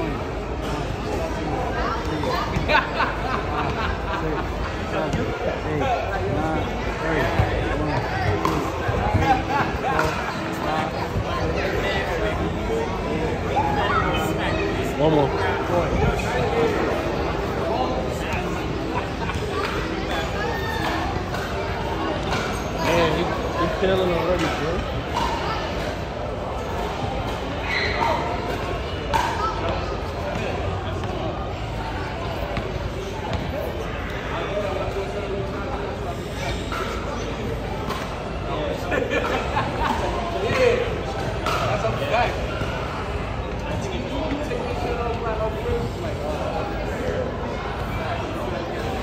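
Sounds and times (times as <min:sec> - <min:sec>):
babble of voices: 0:00.0 - 0:49.0
people chattering: 0:00.0 - 0:49.0.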